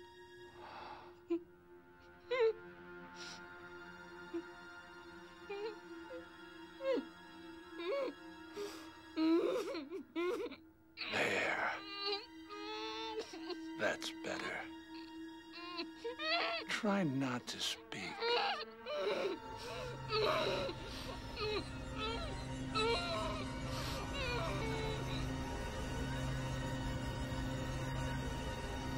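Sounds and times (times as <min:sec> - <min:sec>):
low music drone: 0:00.0 - 0:28.9
woman moaning and whimpering: 0:05.5 - 0:06.2, 0:06.8 - 0:07.1, 0:07.8 - 0:13.8, 0:14.4 - 0:16.7, 0:18.0 - 0:25.3.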